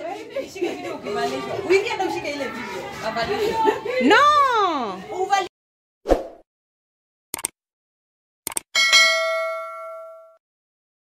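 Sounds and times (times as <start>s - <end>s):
click sound effect: 7.4s - 7.6s, 8.5s - 8.7s
bright bell ding: 8.8s - 10.4s.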